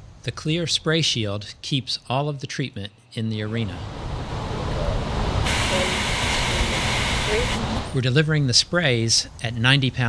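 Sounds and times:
sprayer hissing: 5.4 - 7.9.

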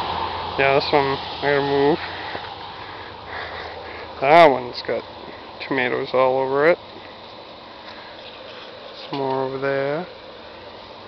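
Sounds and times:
background hum and hiss: 0.0 - 11.0
soft breath noises: 1.9 - 4.2, 7.0 - 9.1.

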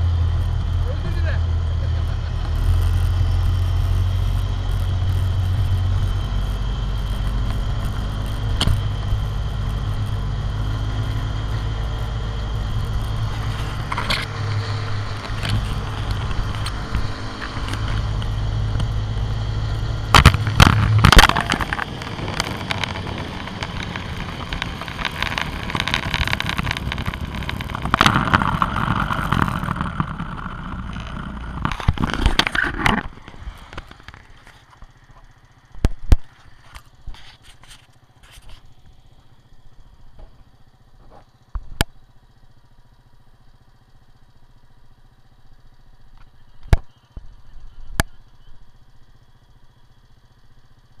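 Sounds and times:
quad bike engine running: 0.0 - 51.0
sharp clicks and knocks: 2.4 - 10.2, 12.7 - 19.0, 20.1 - 38.7.

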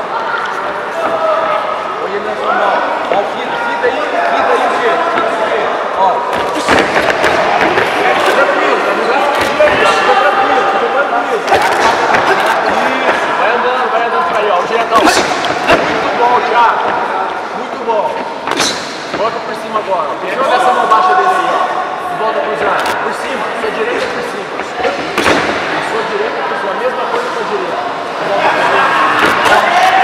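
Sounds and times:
indistinct shouting in a hall: 28.2 - 30.0.

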